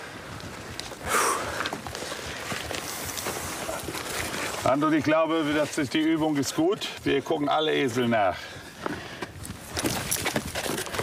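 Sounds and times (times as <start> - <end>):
low scuffling on ground: 0.3 - 8.0.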